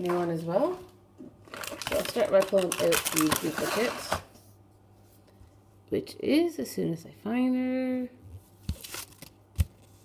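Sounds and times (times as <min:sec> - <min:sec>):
paper rustling: 0:08.6 - 0:10.0.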